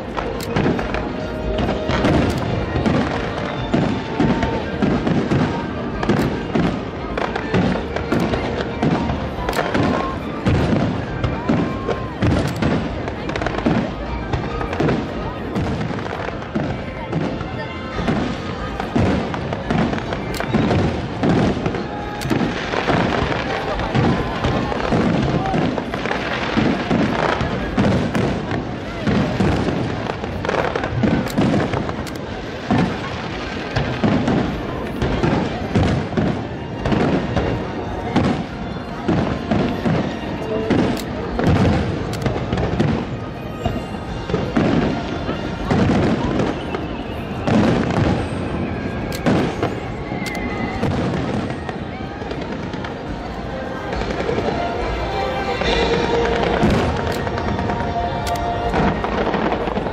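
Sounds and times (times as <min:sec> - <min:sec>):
fireworks crackling barrage: 0:00.0 - 0:59.9.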